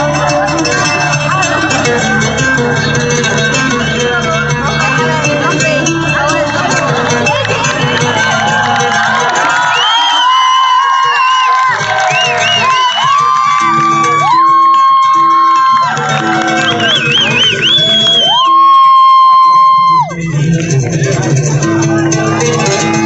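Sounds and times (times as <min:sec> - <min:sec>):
man singing unaccompanied: 0:00.0 - 0:09.8, 0:19.4 - 0:23.0
faint crowd noise: 0:00.0 - 0:23.0.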